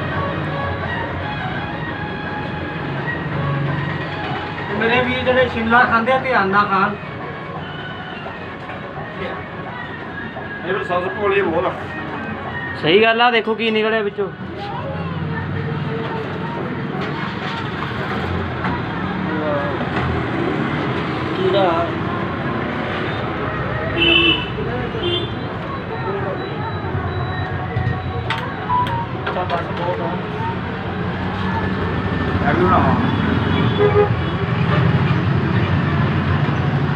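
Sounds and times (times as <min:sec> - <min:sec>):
faint indistinct voices: 0:00.0 - 0:36.9
steady background noise: 0:00.0 - 0:36.9.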